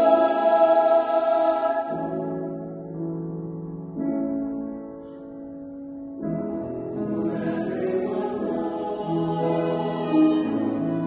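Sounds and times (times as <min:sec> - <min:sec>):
mixed choir singing a hymn: 0:00.0 - 0:02.6, 0:06.9 - 0:11.0.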